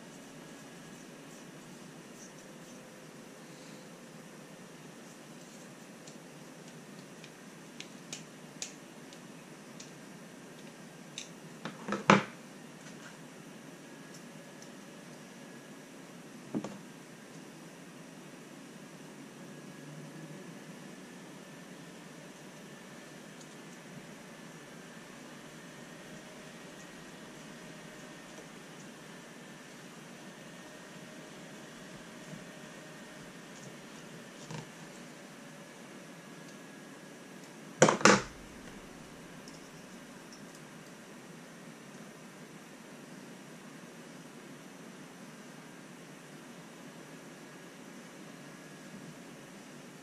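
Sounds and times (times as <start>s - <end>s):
low room hiss: 0.0s - 50.0s.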